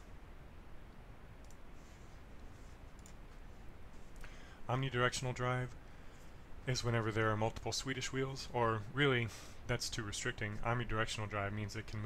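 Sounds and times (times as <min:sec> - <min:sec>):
low steady hum: 0:00.0 - 0:12.0
computer mouse clicks: 0:01.4 - 0:01.7, 0:02.9 - 0:03.2.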